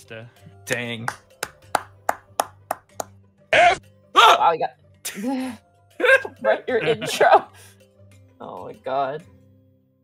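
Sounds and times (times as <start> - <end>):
person clapping slowly: 0.7 - 3.2.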